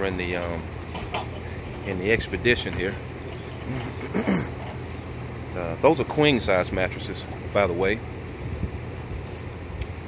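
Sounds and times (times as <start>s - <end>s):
wind buffeting microphone: 8.3s - 10.0s.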